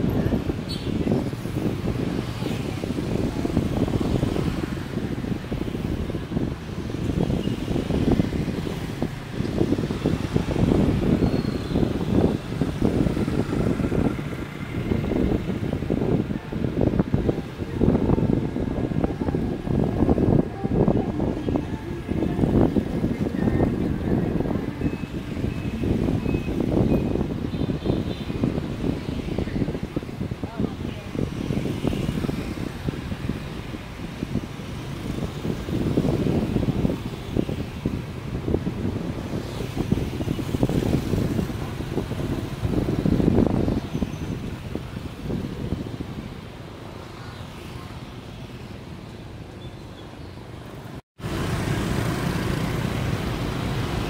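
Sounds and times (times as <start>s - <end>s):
motorbike traffic: 0.0s - 54.0s
wind rumble on microphone: 0.0s - 54.0s.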